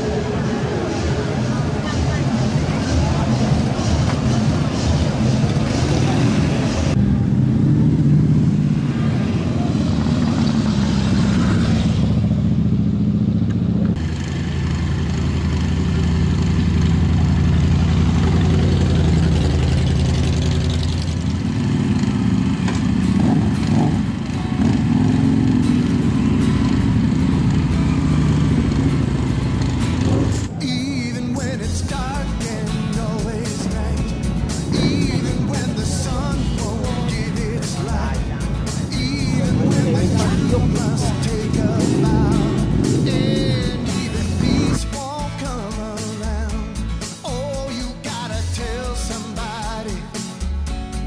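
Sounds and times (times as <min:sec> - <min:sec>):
crowd voices: 0:00.0 - 0:12.0, 0:24.1 - 0:46.3
motorcycles riding past: 0:00.0 - 0:30.5, 0:34.5 - 0:44.8.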